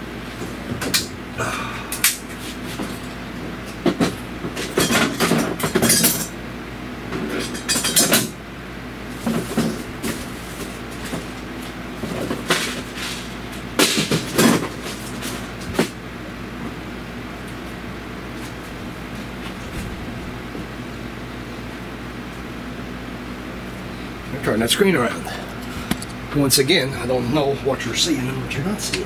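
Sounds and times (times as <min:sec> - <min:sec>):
steady low hum: 0:00.0 - 0:29.0
hand tools clanking on metal: 0:04.6 - 0:06.4.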